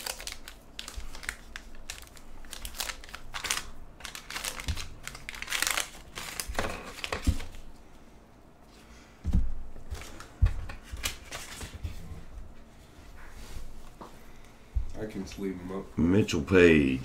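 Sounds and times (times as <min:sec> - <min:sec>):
wax paper wrapper crinkling: 0:00.0 - 0:07.6.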